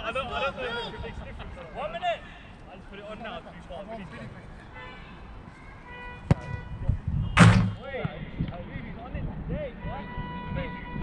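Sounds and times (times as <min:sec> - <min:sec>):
sharp knock: 0:07.4 - 0:07.9
short thud: 0:07.4 - 0:08.2.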